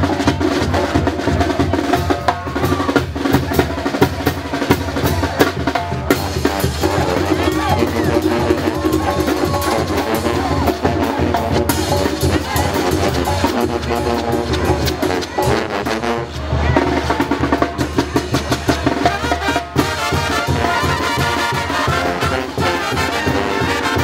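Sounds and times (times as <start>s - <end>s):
bass drum beat: 0.0s - 24.0s
brass band playing: 0.0s - 24.0s.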